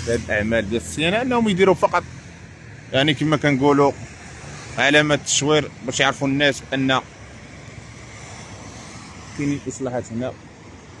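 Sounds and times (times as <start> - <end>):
cars passing: 0.0 - 11.0
road traffic: 0.0 - 11.0.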